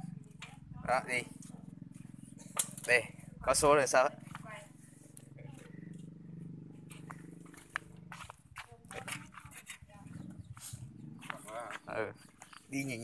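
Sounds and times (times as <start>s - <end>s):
small engine idling: 0.0s - 13.0s.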